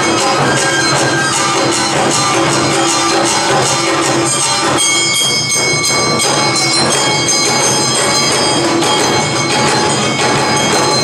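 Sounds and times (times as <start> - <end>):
bamboo flutes high notes: 0.0 - 9.4
clanging metal gong: 0.0 - 11.0
shamisen: 0.0 - 11.0
taiko drums: 0.0 - 11.0.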